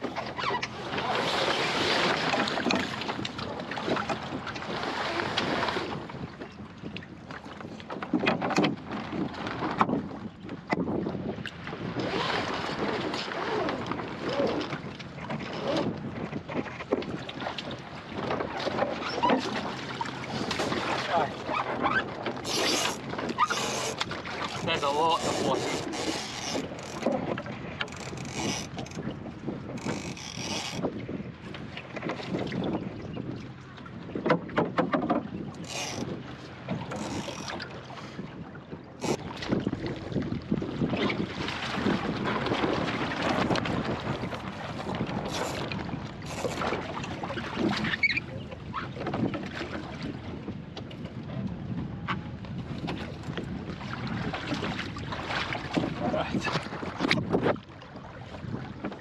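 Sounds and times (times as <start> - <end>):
water sloshing and splashing: 0.0 - 59.0
wind buffeting microphone: 0.0 - 59.0.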